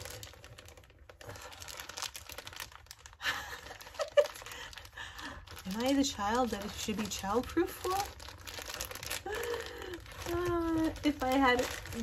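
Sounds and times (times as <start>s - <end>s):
packaging bag crinkling and tearing: 0.0s - 12.0s.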